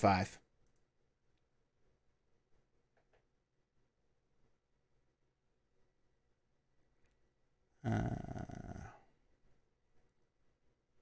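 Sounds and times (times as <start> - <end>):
man's creaky hesitation sound: 7.8 - 9.0.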